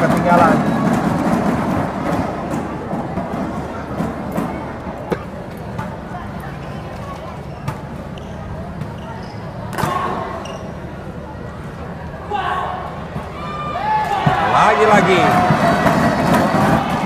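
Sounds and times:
hall background noise: 0.0s - 17.0s.

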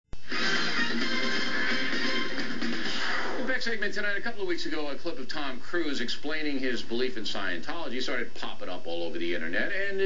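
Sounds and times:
news intro music on television: 0.2s - 10.0s.

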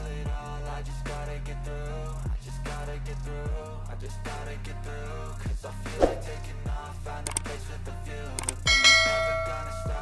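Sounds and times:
hip-hop music: 0.0s - 10.0s
quick clicks: 7.2s - 7.5s, 8.4s - 8.7s
notification bell ding: 8.7s - 10.0s.

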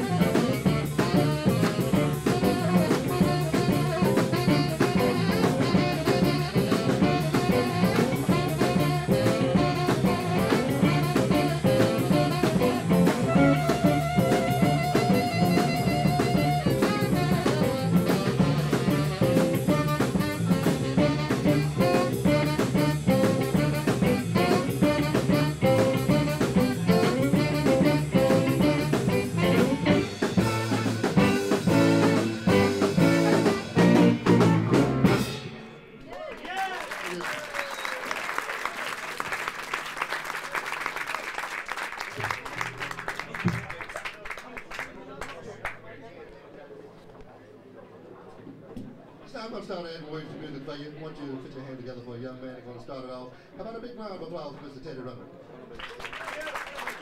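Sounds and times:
blues band playing live: 0.0s - 36.0s, 42.0s - 43.8s
audience applauding: 36.0s - 45.8s, 55.7s - 57.0s.

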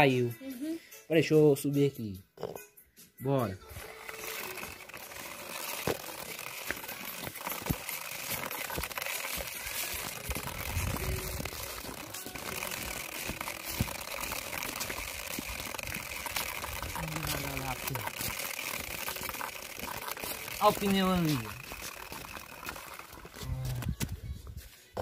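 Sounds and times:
toy truck wheels rolling on concrete: 3.5s - 25.0s.

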